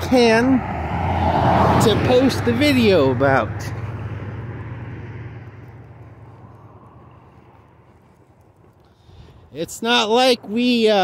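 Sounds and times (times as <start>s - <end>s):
motor vehicle passing: 0.0s - 9.6s.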